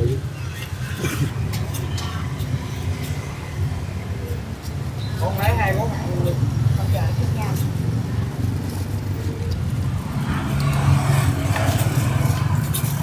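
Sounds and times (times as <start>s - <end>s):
low rumble of street traffic: 0.0s - 13.0s
motorbikes passing: 0.0s - 13.0s.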